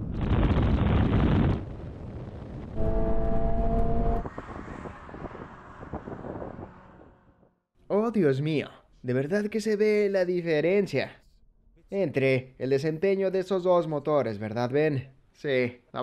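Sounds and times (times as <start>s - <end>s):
wind noise: 0.0s - 7.5s
engine note inside cabin: 2.8s - 4.2s.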